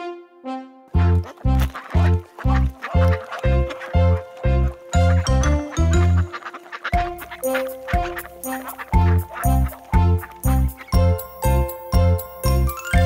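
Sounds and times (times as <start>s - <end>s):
bouncy children's song music: 0.0s - 13.0s
cartoon duck quacks: 5.0s - 9.9s
bass drum beat: 8.0s - 12.6s.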